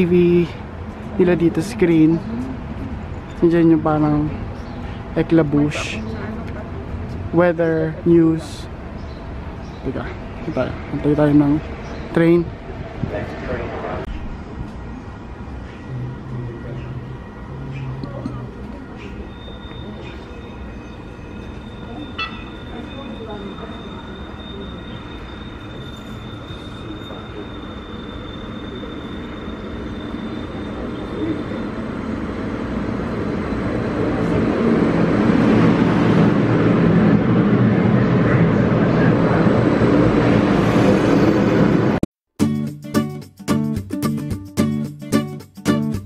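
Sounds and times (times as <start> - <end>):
light rail train arriving: 0.0 - 42.0
thin steady high tone: 19.2 - 31.9.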